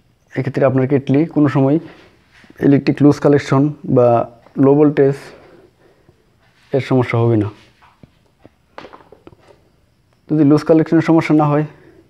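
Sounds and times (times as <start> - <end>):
wires rustling and clicking: 7.4 - 9.7.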